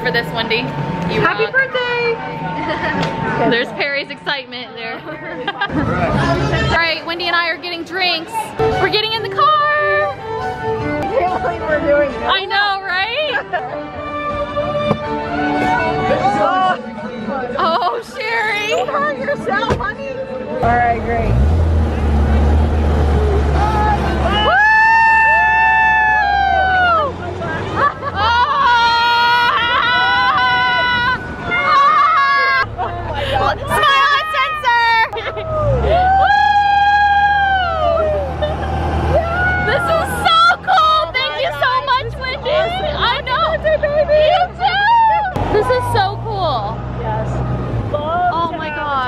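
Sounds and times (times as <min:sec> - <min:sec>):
car engine rumble: 0:00.0 - 0:16.4, 0:17.4 - 0:49.0
people whooping: 0:23.2 - 0:41.5, 0:44.0 - 0:47.1.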